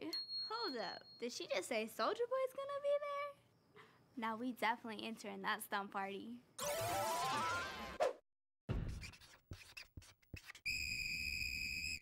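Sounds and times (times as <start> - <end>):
short scratchy strokes: 9.0 - 10.6
shrill whistle blast: 10.6 - 12.0.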